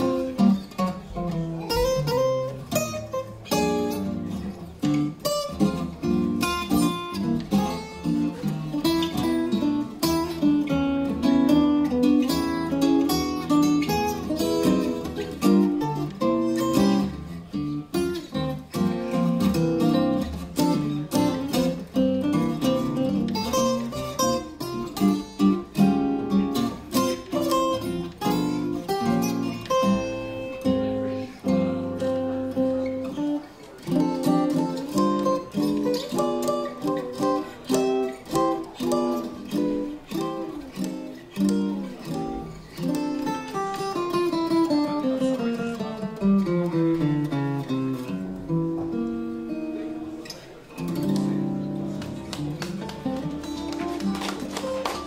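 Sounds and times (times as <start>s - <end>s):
guitar duet: 0.0s - 55.0s.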